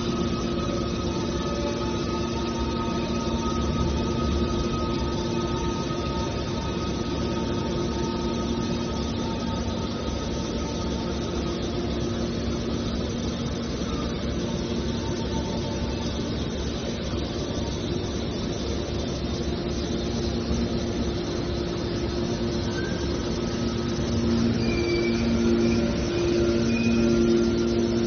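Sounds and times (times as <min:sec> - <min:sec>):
hydraulic unit humming and whining: 0:00.0 - 0:28.0.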